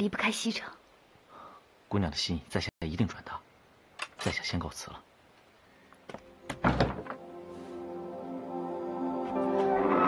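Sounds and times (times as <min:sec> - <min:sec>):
soft background music: 0:06.2 - 0:10.0
dull thud of door: 0:06.5 - 0:07.2.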